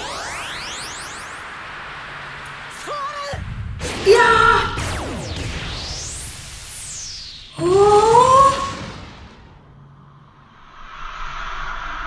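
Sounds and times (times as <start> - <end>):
rushing noise with low rumble: 1.3 - 7.0.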